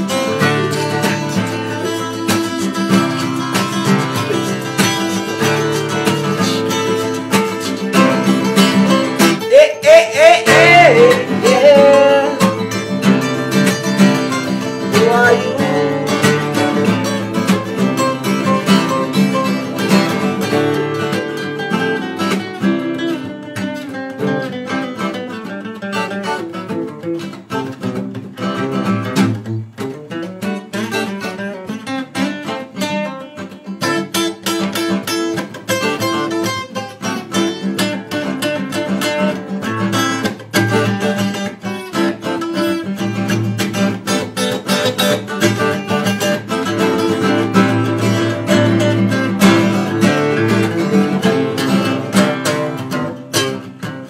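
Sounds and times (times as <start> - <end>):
picked guitar lead lines: 0.0 - 54.0
strummed acoustic guitar: 0.0 - 54.0.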